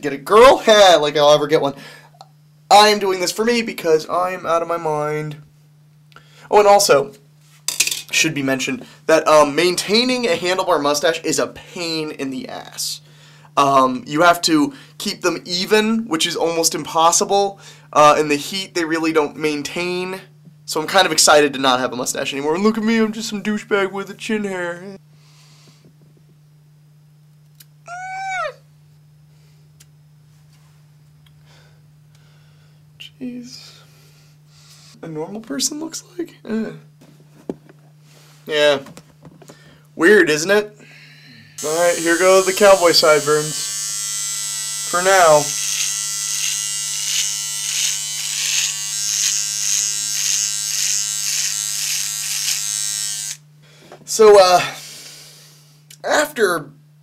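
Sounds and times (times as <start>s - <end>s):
electric trimmer buzzing: 41.6s - 53.5s.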